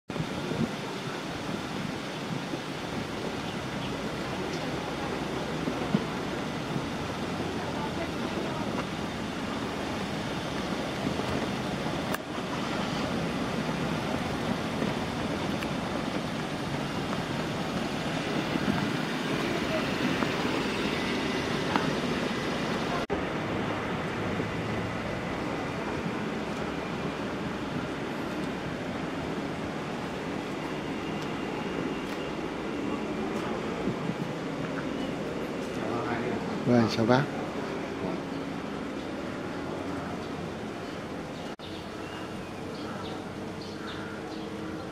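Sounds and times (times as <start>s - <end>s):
road traffic: 0.1s - 44.9s
distant voices: 0.2s - 44.9s.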